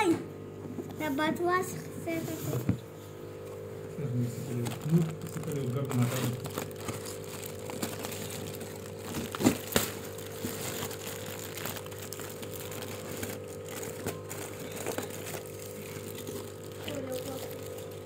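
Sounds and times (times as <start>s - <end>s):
steady low hum: 0.0s - 18.0s
foil crinkling and crackling: 4.2s - 18.0s.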